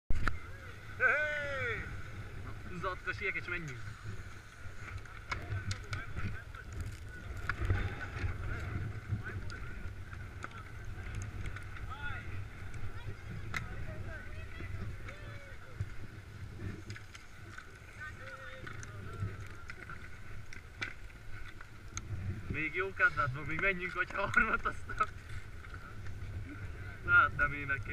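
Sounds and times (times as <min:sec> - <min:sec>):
faint distant voices: 0:00.1 - 0:27.9
wind rumbling on microphone: 0:00.1 - 0:27.9.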